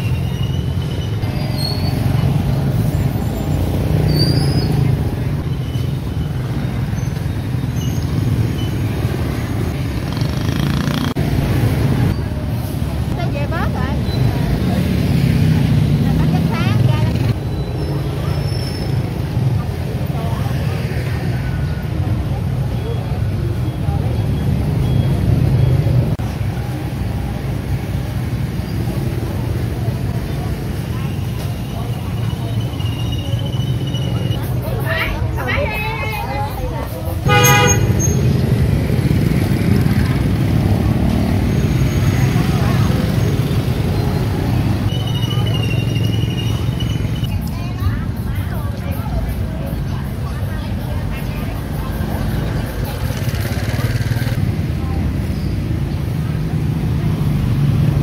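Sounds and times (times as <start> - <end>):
motorbike engines passing: 0.0 - 58.0
people talking: 11.4 - 28.0, 28.8 - 38.0, 39.3 - 58.0.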